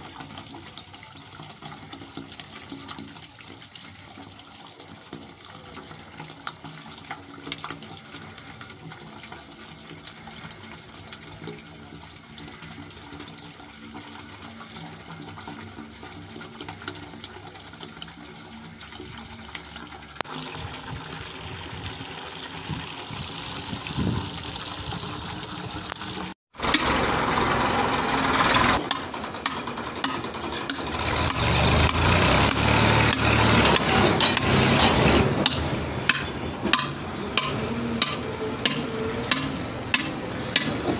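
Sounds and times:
water running in a pipe: 0:00.0 - 0:40.9
hammer striking steel pipe: 0:28.8 - 0:40.9.

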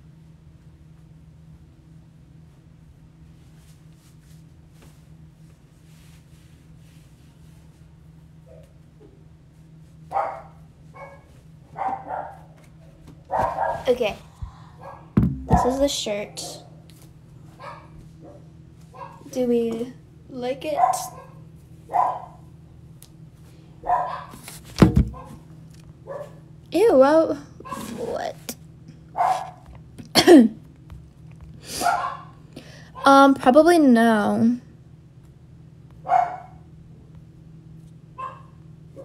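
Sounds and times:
dog barking: 0:10.1 - 0:12.5, 0:13.3 - 0:13.9, 0:20.8 - 0:22.4, 0:23.8 - 0:24.4, 0:26.1 - 0:26.4, 0:29.2 - 0:29.6, 0:31.8 - 0:32.4, 0:36.0 - 0:36.6, 0:38.2 - 0:39.0
sharp thump: 0:15.2 - 0:15.8.

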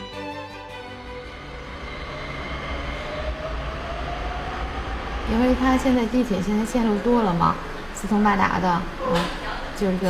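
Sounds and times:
subway train pulling away: 0:00.0 - 0:10.0.

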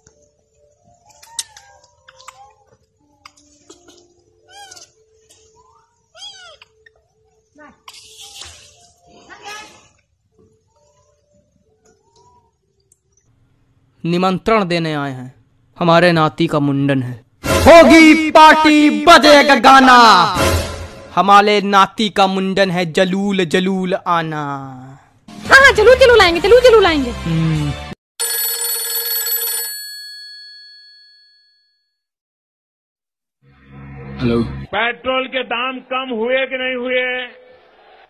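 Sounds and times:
old telephone bell ringing: 0:28.2 - 0:31.8.

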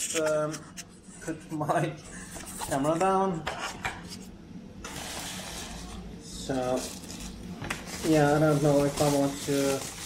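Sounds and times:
bubble wrap rustling: 0:04.9 - 0:10.0.

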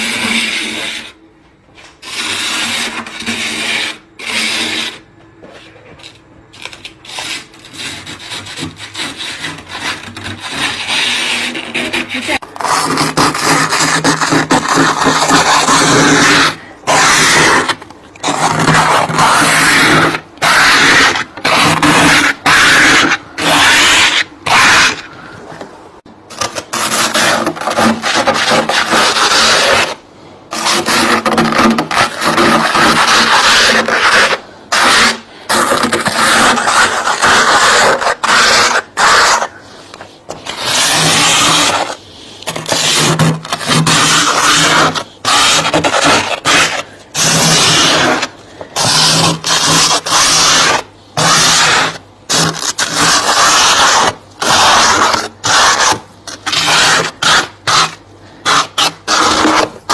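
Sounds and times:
hand scraper scraping frost: 0:00.0 - 0:01.2, 0:01.8 - 0:25.2, 0:26.3 - 0:59.9.

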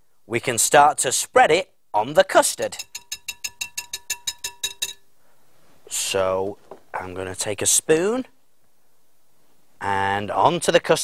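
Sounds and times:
whisk clinking against glass bowl: 0:02.7 - 0:05.1.

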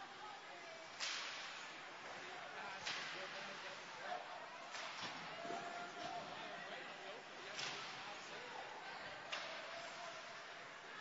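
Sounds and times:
faint crowd voices: 0:00.0 - 0:11.0
hockey stick and puck cracks: 0:01.0 - 0:01.6, 0:02.8 - 0:03.6, 0:07.6 - 0:08.2, 0:09.3 - 0:10.0.

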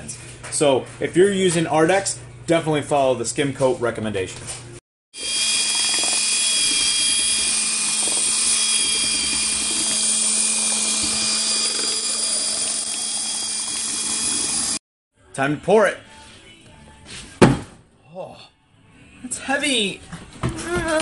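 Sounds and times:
power drill mixer whining: 0:05.2 - 0:14.8.

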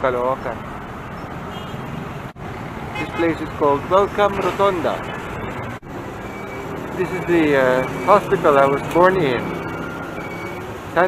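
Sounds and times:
road traffic passing: 0:00.0 - 0:11.0.

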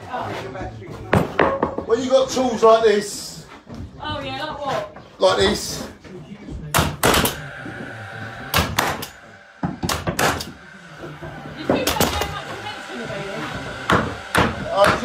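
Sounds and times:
nail gun firing into plywood: 0:06.8 - 0:07.4, 0:08.5 - 0:10.6.

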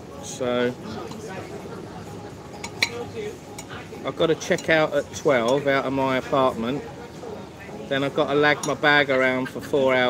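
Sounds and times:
metal cutlery clinking on plate: 0:02.5 - 0:03.8, 0:04.4 - 0:04.8.

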